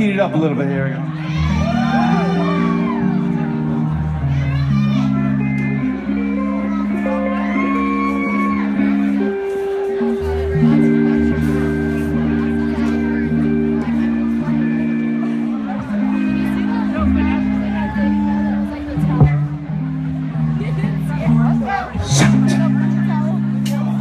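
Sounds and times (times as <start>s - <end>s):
live band playing: 0.0s - 24.0s.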